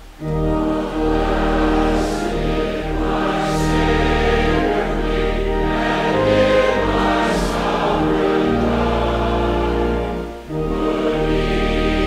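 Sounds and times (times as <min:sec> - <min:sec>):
instrumental accompaniment low notes: 0:00.0 - 0:12.0
congregation singing a hymn: 0:00.2 - 0:12.0.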